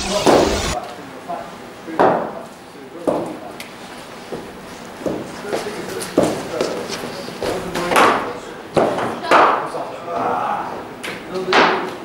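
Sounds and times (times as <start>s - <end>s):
intro sound effect: 0.0s - 0.8s
sharp knocks echoing: 0.0s - 0.8s
faint background voices: 0.0s - 12.0s.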